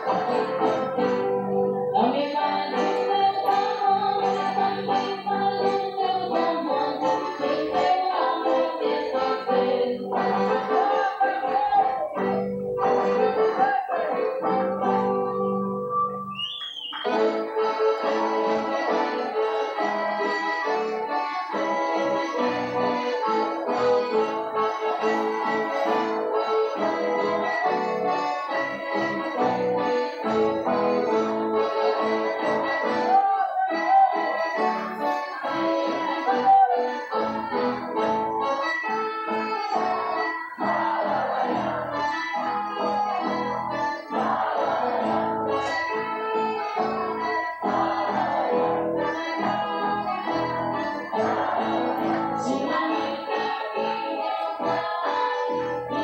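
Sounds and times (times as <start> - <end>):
folk dance music with accordion: 0.0 - 56.0.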